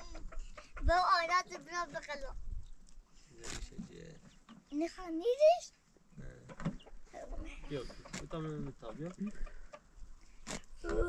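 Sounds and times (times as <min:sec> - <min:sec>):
chicken clucking: 0:00.0 - 0:01.7, 0:06.4 - 0:11.0.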